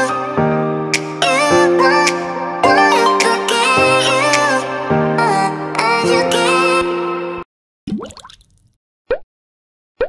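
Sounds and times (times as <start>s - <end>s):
water-drop bloop effects: 7.9s - 9.3s.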